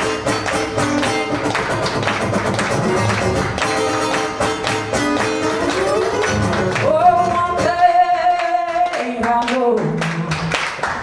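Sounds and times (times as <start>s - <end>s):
hand claps: 0.0s - 7.0s, 8.4s - 11.0s
acoustic guitar strumming: 0.0s - 8.7s.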